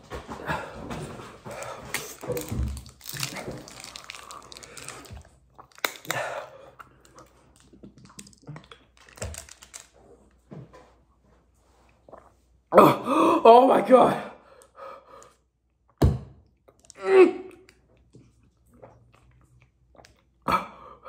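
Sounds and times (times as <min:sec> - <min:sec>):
pained vocal sounds: 0:16.9 - 0:17.6.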